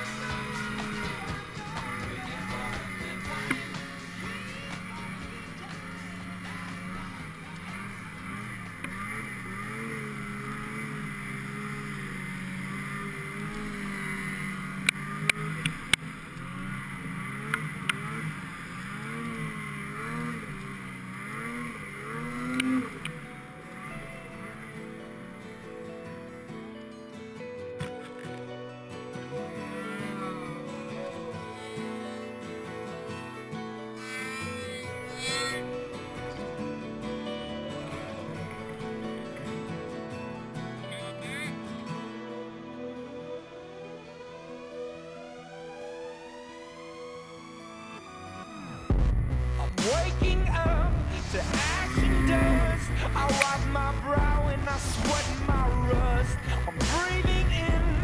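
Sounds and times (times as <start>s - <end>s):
snowmobile engine revving: 0.0s - 26.7s, 29.1s - 41.6s, 43.8s - 58.0s
music playing: 0.0s - 58.0s
sharp clicks: 53.0s - 54.0s.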